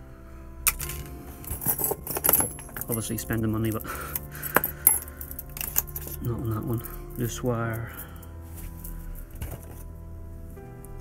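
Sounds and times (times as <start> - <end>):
soft background music: 0.0 - 11.0
tools clinking in metal box: 0.7 - 9.8.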